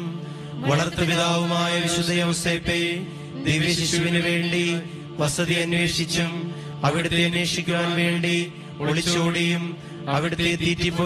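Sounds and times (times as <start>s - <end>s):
person chanting invocations: 0.0s - 11.0s
sustained drone: 0.0s - 11.0s.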